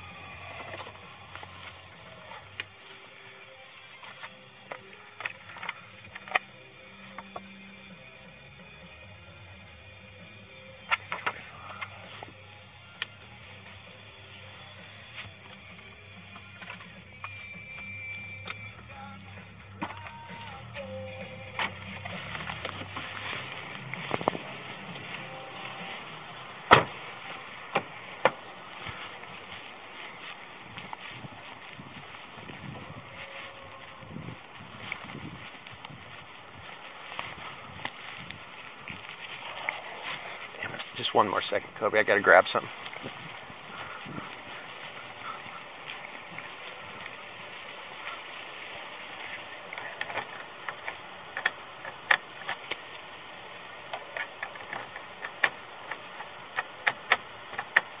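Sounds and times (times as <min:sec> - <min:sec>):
low steady hum: 0:00.0 - 0:58.0.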